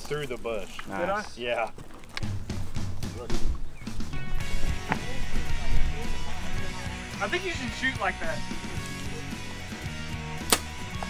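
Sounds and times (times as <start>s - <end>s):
background music: 2.2s - 11.0s.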